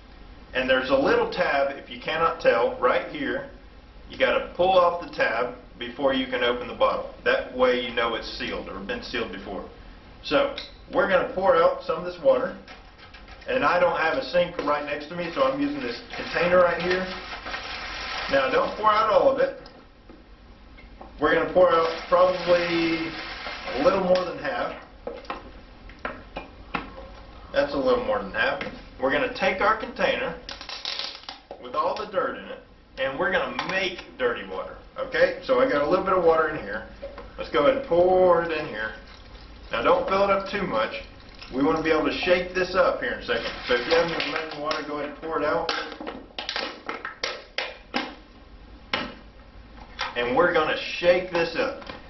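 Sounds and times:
plastic bottle crackling: 0:30.5 - 0:31.5.

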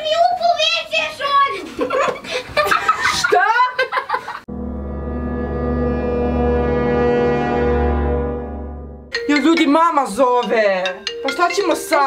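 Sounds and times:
low horn-like sound effect: 0:04.5 - 0:09.1.

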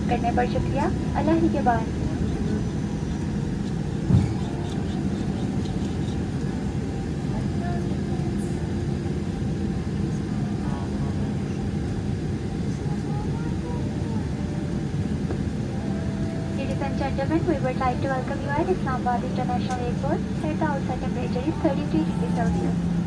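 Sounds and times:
airliner engines rumbling: 0:00.0 - 0:23.0.

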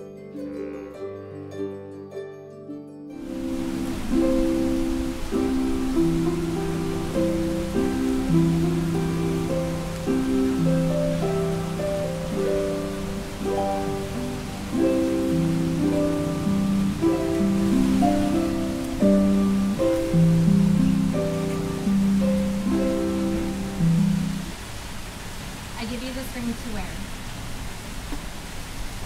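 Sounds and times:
harp melody: 0:00.0 - 0:24.6.

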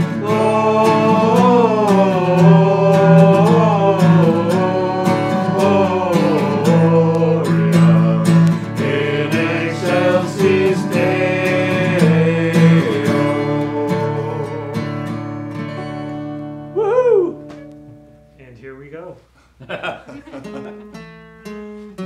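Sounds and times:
group of people singing: 0:00.0 - 0:15.4
strummed acoustic guitar: 0:00.0 - 0:16.8, 0:20.3 - 0:22.0.

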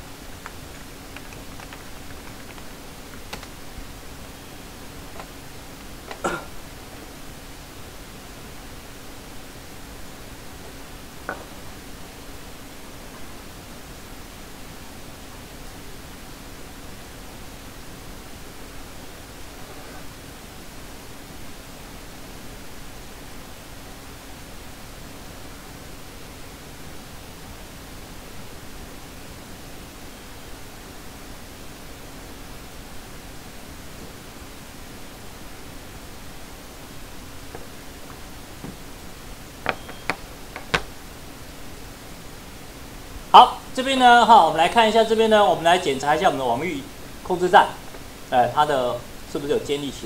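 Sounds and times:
background hiss: 0:00.0 - 0:50.0
faint steady hum: 0:00.0 - 0:50.0.

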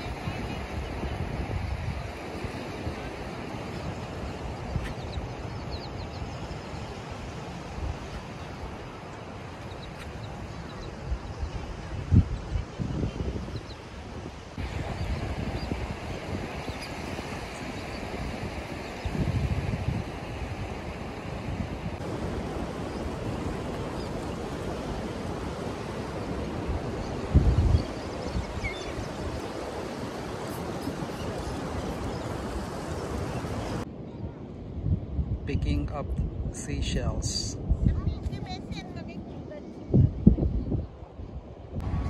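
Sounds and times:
ocean surf: 0:00.0 - 0:37.8, 0:41.0 - 0:42.0
wind buffeting microphone: 0:00.0 - 0:42.0.

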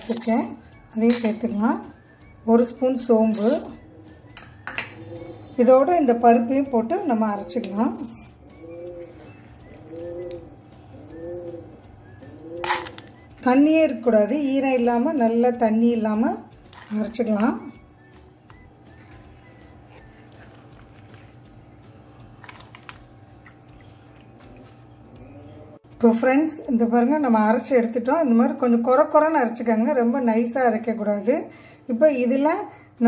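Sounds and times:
dove cooing: 0:03.3 - 0:05.9, 0:07.0 - 0:13.4.

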